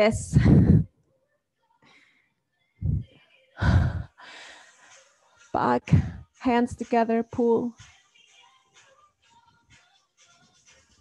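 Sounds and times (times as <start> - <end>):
woman sighing: 3.6 - 4.3.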